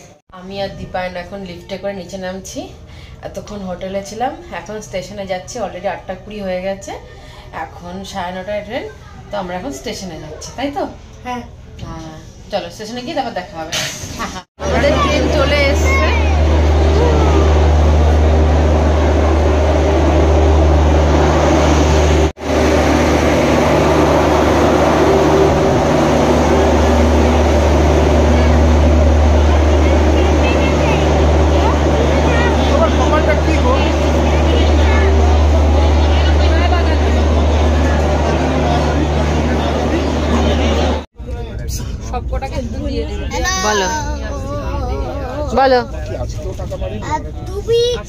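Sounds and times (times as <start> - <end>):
diesel generator droning: 14.6 - 42.0
faint voices: 26.4 - 42.0.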